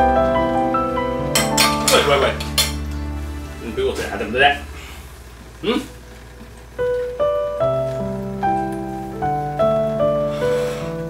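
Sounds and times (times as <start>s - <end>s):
metal fork clinking on plate: 1.4s - 2.8s.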